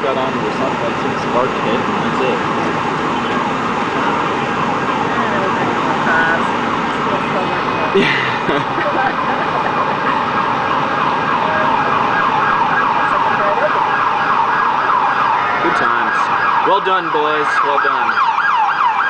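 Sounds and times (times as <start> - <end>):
emergency siren yelping: 0.0 - 19.0
street noise: 0.0 - 19.0.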